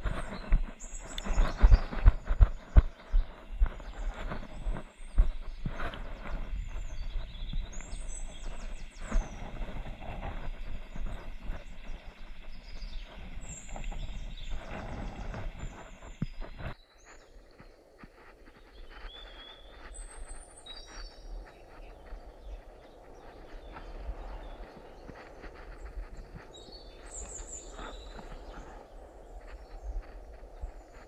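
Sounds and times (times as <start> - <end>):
small birds chirping: 0.0 - 31.0.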